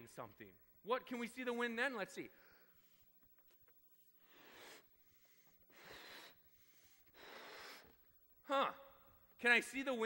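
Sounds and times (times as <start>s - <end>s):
man blowing up a balloon: 4.2s - 8.0s.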